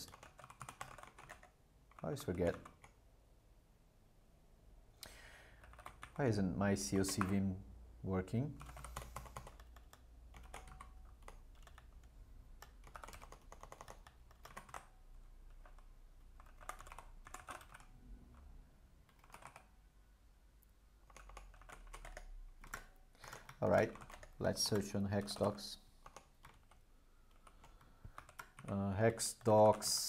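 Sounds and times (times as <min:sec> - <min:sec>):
faint keyboard typing: 0:00.0 - 0:03.0, 0:05.2 - 0:06.2, 0:06.8 - 0:07.5, 0:08.5 - 0:19.8, 0:20.6 - 0:30.0.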